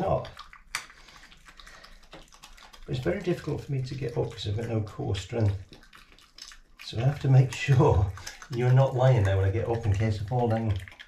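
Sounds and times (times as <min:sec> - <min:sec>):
badger crunching food: 0:00.0 - 0:11.0.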